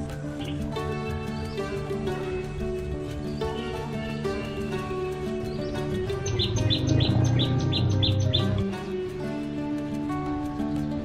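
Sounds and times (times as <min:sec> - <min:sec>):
background music with held tones: 0:00.0 - 0:11.0
bird chirping: 0:00.4 - 0:09.0.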